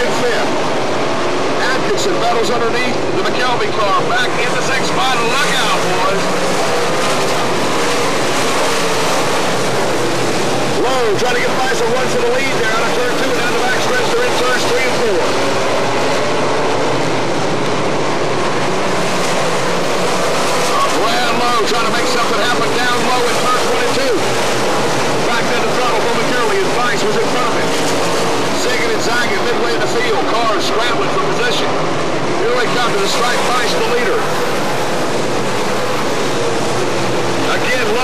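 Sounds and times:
race car engines racing: 0:00.0 - 0:38.0.

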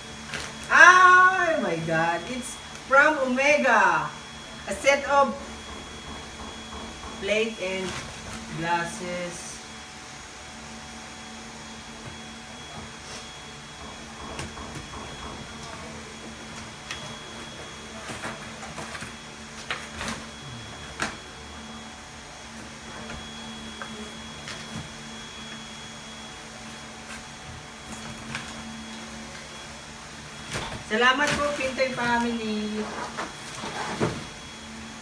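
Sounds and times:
faint high whine: 0:00.0 - 0:35.0
steady mechanical hum: 0:00.0 - 0:35.0.

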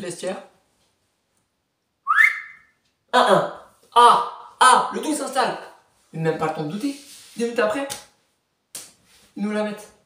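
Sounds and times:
person whistling upward glide: 0:02.0 - 0:02.8.

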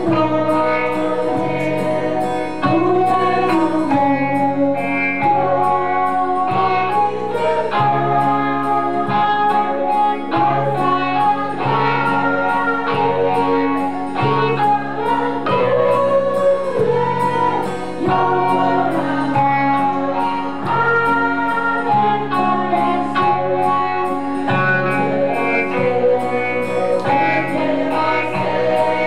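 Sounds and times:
instrumental accompaniment: 0:00.0 - 0:29.0
woman singing a hymn: 0:00.0 - 0:29.0.

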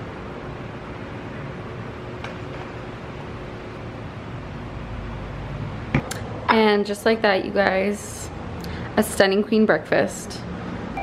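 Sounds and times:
fan-like hiss and hum: 0:00.0 - 0:11.0.

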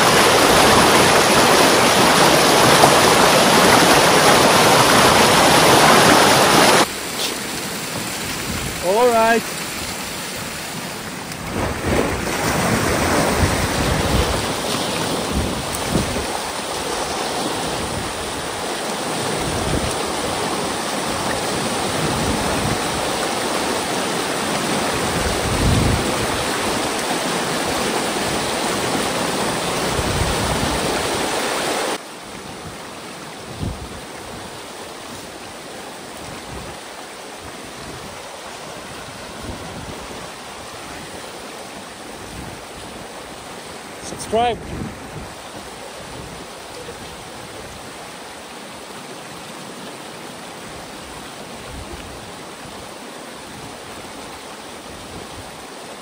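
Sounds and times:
water rushing down a ditch: 0:00.0 - 0:56.0.

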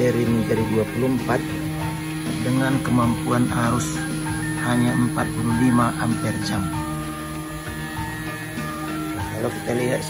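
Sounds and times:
background music with sustained tones: 0:00.0 - 0:10.0.

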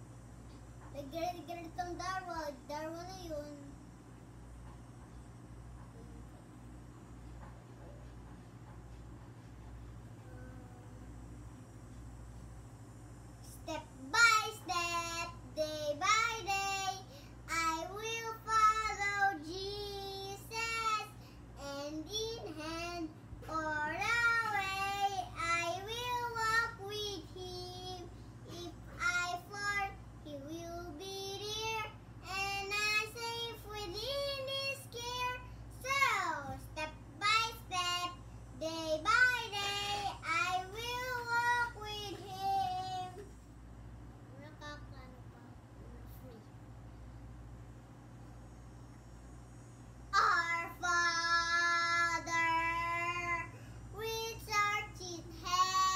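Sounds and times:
boy singing unaccompanied: 0:13.5 - 0:43.2, 0:50.2 - 0:55.9.

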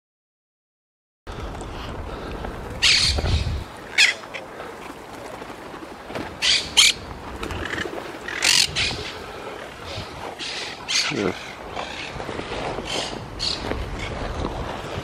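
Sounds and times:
parakeets squawking: 0:02.8 - 0:04.2, 0:06.4 - 0:07.0, 0:07.6 - 0:09.1, 0:10.4 - 0:12.2
pigeon wings flapping and rustling: 0:07.1 - 0:08.3.

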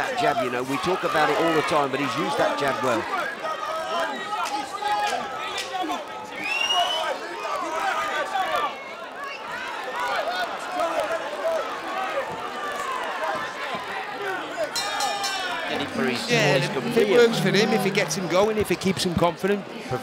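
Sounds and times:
crowd shouting and chattering: 0:00.0 - 0:20.0
high rising call: 0:15.2 - 0:18.8.

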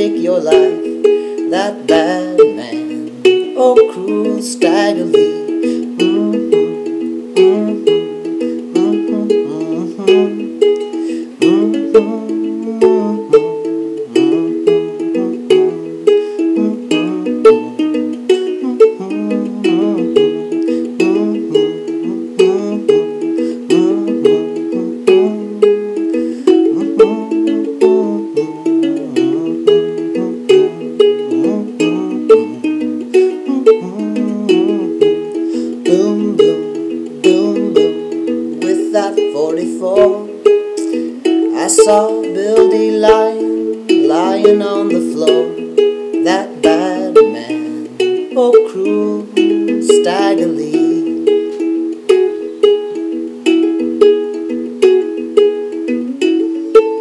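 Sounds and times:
fingerpicked ukulele blues: 0:00.0 - 0:57.0.

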